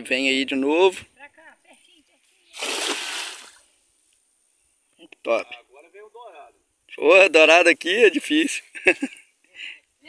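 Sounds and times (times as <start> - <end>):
net splashing into water: 2.5 - 3.6.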